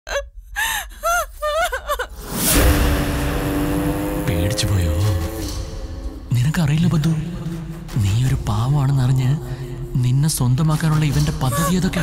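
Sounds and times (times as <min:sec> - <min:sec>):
woman laughing: 0:00.1 - 0:02.2, 0:11.4 - 0:12.0.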